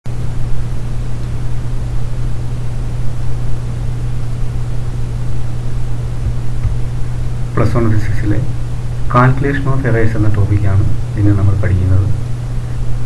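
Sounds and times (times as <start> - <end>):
background hiss: 0.1 - 13.0
steady low hum: 0.1 - 13.0.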